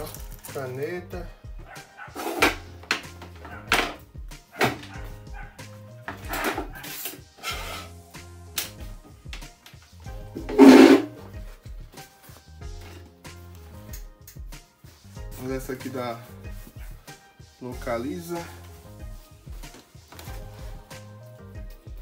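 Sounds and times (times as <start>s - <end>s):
music with bass beat: 1.0s - 6.9s, 7.5s - 22.0s
dog barking: 1.6s - 2.4s, 3.4s - 5.6s.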